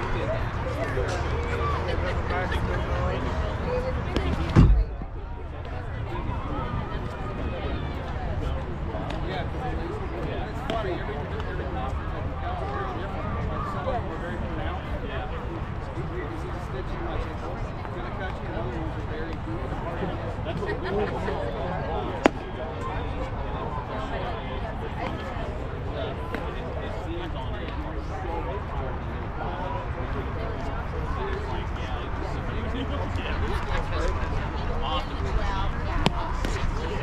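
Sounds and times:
indistinct chatter: 0.0 - 37.0
steady low rumble: 4.3 - 6.2
ball smacking into mitt: 22.2 - 22.4.

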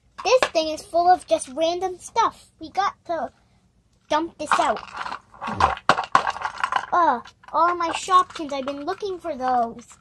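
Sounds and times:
plastic toys clattering onto carpet: 4.4 - 10.0.

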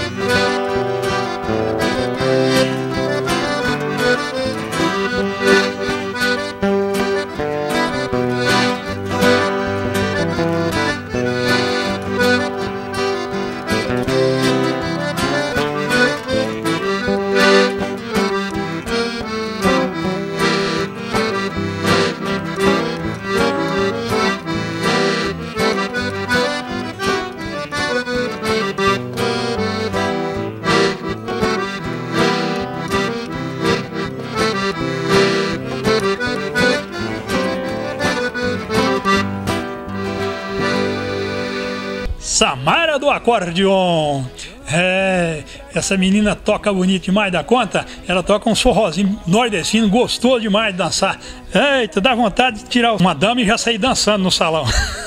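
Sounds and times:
accordion playing lively tune: 0.0 - 55.0
acoustic guitar accompaniment: 0.0 - 55.0.

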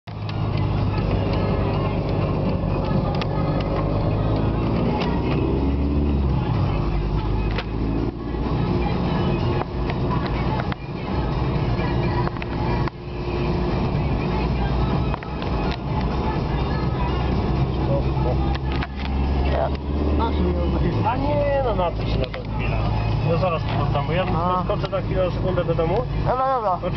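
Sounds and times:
car engine and road rumble: 0.0 - 26.9
music playing: 0.1 - 26.9
voice on car audio: 17.7 - 26.9.

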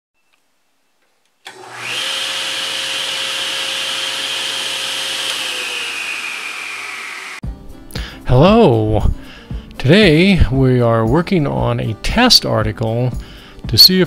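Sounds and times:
motor whining machine: 1.5 - 7.4.

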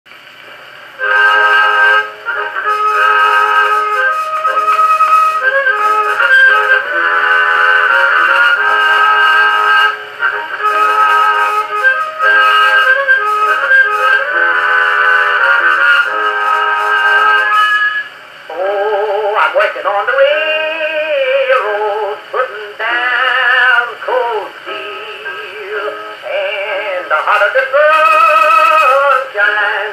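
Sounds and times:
thin phonograph music: 0.1 - 29.9.

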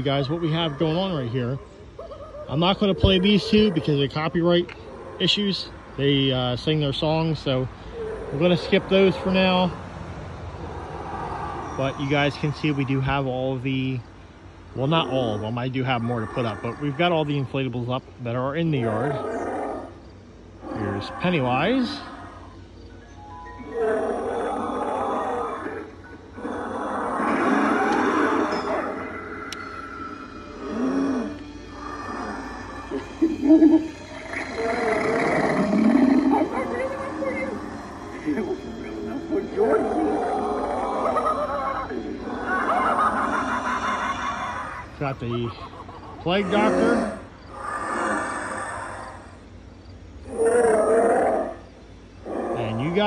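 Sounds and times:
breathy hissing growl: 0.0 - 1.6, 14.8 - 17.4, 20.6 - 22.6, 23.7 - 45.1, 45.7 - 49.6, 50.2 - 53.0
wavering groan: 0.0 - 6.3, 14.8 - 17.5, 18.6 - 22.7, 23.5 - 49.6, 50.2 - 53.0
music: 23.0 - 24.1, 37.8 - 40.7.

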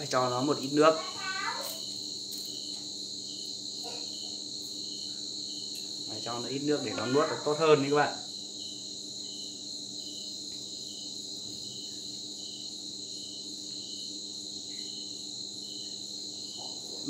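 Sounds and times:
crickets chirping and trilling: 0.0 - 17.0.

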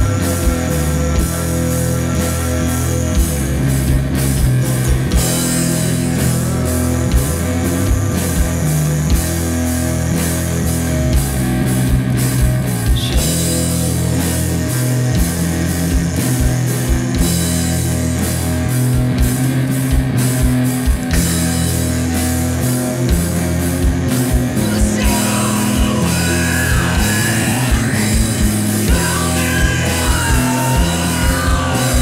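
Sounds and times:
bass guitar low notes: 0.0 - 32.0
distorted electric guitar: 0.0 - 32.0
drum kit: 0.0 - 32.0.

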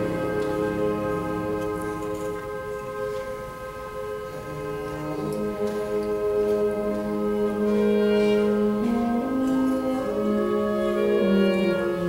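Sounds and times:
concert band playing wind chords: 0.0 - 12.0.

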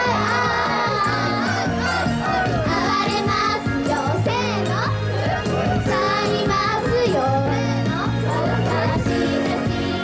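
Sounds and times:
girls singing into microphones: 0.0 - 10.0
loud pop backing music: 0.0 - 10.0.

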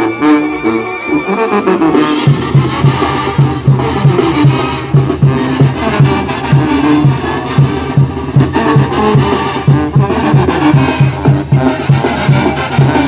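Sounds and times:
brass band playing: 0.0 - 13.0
drums and percussion: 0.0 - 13.0.

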